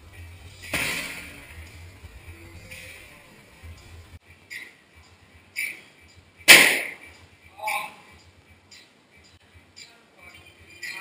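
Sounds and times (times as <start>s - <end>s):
strike smack: 6.5s - 7.0s.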